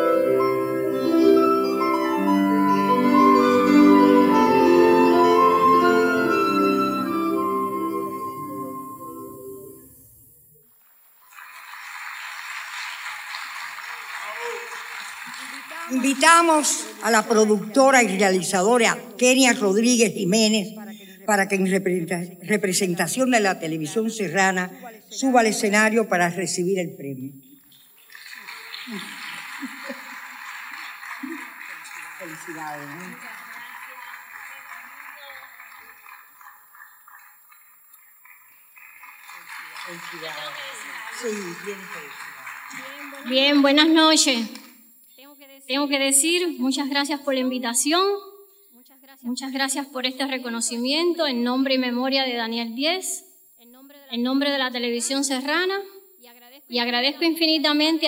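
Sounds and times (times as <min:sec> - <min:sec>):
murmur of large hall: 0:00.0 - 0:53.9
audience applauding: 0:10.7 - 0:19.6, 0:27.7 - 0:44.3.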